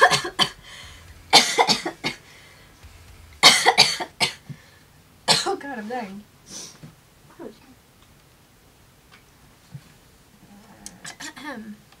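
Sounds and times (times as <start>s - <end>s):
woman coughing: 1.3s - 2.0s.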